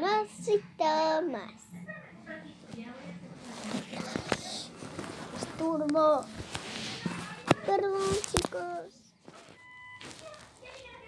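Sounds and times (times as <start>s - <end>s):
clothing and hair rustling: 2.5s - 11.0s
child's voice murmuring: 7.0s - 9.0s.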